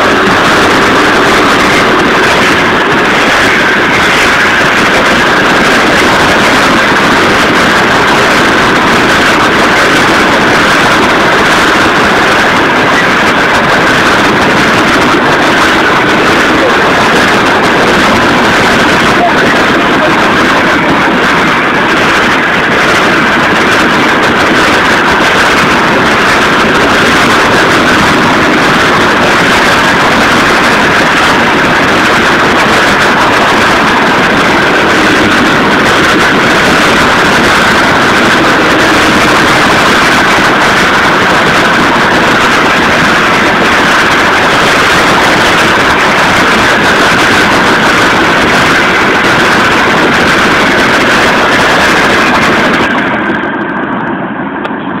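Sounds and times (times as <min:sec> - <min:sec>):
train wheels rolling on rails: 0:00.0 - 0:53.7.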